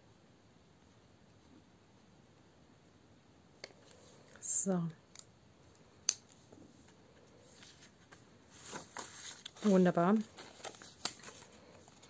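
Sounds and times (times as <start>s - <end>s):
paper sheet handling: 7.5s - 12.0s.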